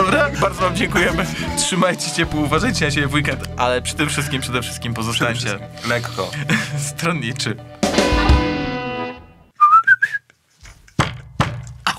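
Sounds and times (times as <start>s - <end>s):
strummed guitar chord: 7.8s - 9.3s
rising whistle: 9.6s - 10.2s.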